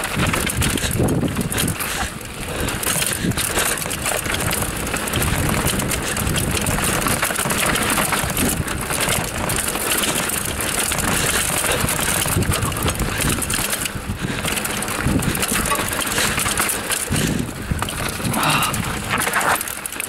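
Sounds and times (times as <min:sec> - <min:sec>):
bike frame rattling over bumps: 0:00.0 - 0:20.0
bike tyres crunching over dirt: 0:00.0 - 0:20.0
steady rushing noise: 0:00.0 - 0:20.0.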